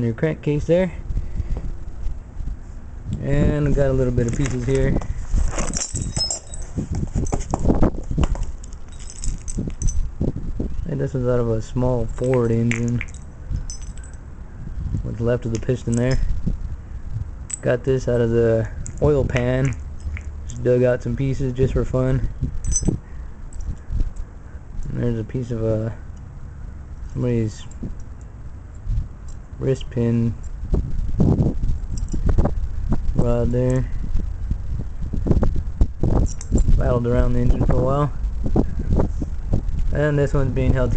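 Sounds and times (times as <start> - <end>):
metal parts handling rustle: 2.6 - 10.1, 11.0 - 16.5, 17.4 - 26.3
metal fragments clinking and scraping: 4.3 - 7.5, 8.2 - 10.0, 12.1 - 14.2.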